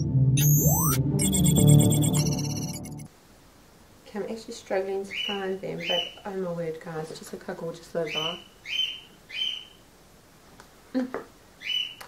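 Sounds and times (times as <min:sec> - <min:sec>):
bird chirping: 0:00.4 - 0:02.9, 0:05.1 - 0:06.2, 0:08.0 - 0:09.8, 0:11.6 - 0:12.0.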